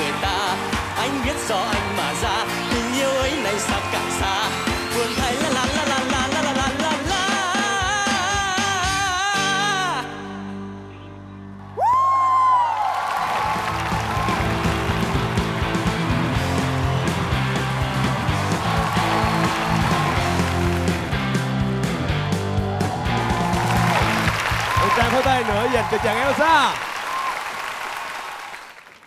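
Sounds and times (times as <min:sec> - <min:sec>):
audience applause and cheering: 0:00.0 - 0:08.9, 0:11.5 - 0:29.0
band playing: 0:00.0 - 0:10.9, 0:13.4 - 0:26.7
person singing: 0:00.0 - 0:11.1.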